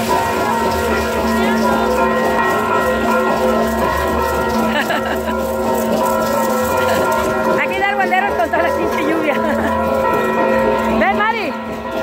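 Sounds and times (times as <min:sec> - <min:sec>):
church bells ringing: 0:00.0 - 0:12.0
crowd noise: 0:00.0 - 0:12.0.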